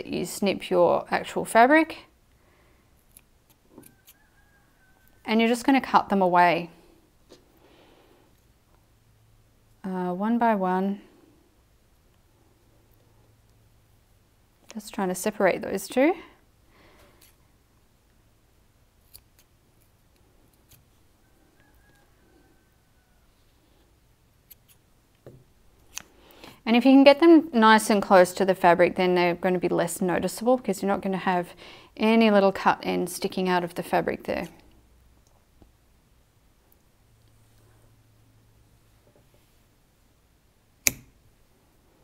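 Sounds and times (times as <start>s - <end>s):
scissors snipping yarn: 3.0s - 4.2s, 19.0s - 21.0s, 40.8s - 41.2s
scissors snip: 40.8s - 41.1s.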